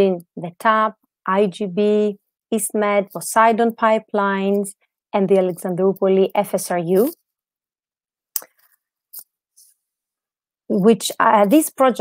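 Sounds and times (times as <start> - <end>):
woman speaking: 0.0 - 7.2, 10.7 - 12.0.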